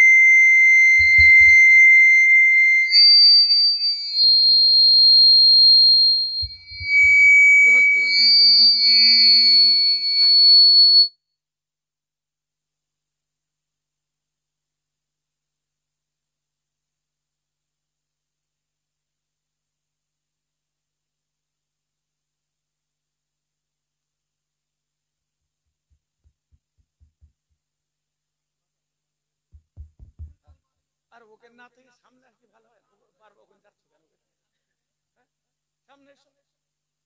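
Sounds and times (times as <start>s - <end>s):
microphone feedback squeal: 0.0s - 11.2s.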